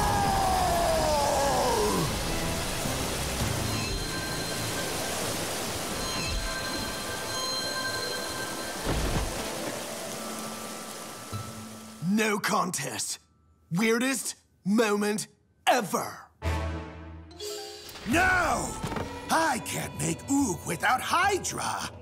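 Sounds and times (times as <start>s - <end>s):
action music: 16.4s - 20.6s.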